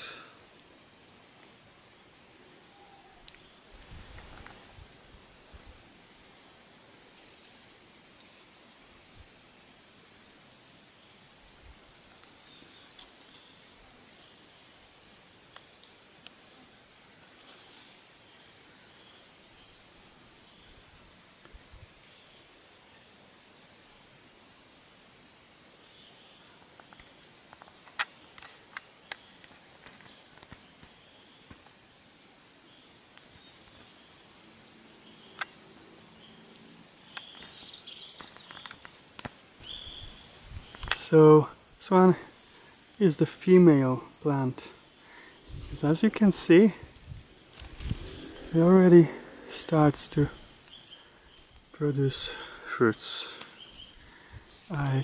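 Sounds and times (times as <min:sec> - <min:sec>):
sharp clicks: 0:40.6 - 0:41.0.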